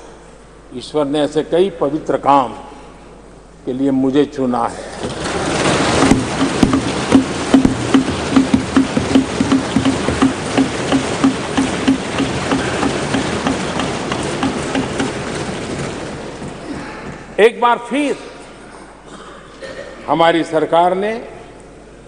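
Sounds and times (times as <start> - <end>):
hands thumping wooden desks: 5.0 - 17.2.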